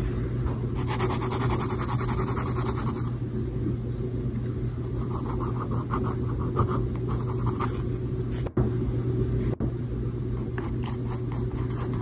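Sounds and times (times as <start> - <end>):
steady low hum: 0.0 - 12.0
pencil scratching on paper: 0.8 - 3.2, 4.8 - 7.8, 10.4 - 12.0.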